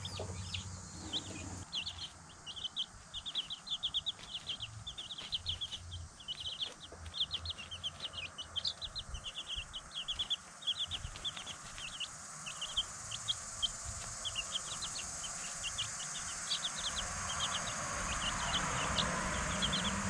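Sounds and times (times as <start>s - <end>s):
chicks peeping: 0.0s - 20.0s.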